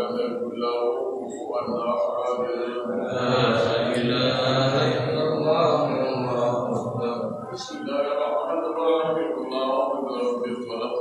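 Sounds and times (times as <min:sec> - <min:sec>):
men chanting together: 0:02.9 - 0:07.1.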